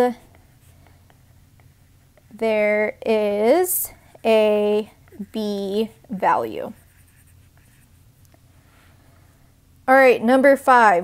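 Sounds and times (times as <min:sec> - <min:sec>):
stylus strokes on glass screen: 0:00.0 - 0:08.2.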